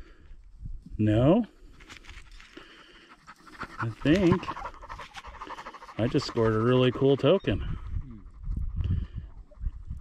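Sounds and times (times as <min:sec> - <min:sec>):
quiet panting breaths: 0:01.5 - 0:10.0.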